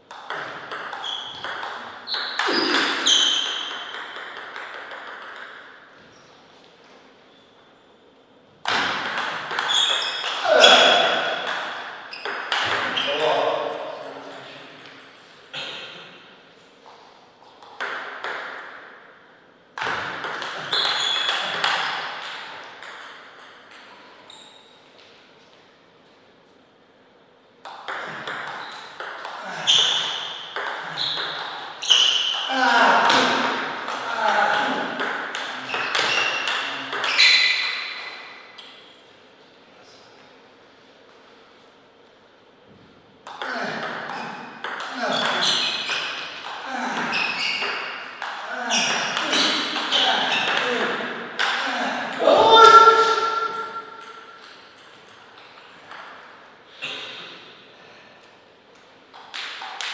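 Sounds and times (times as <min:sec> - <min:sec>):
table tennis ball clicking: 0:00.1 - 0:05.7.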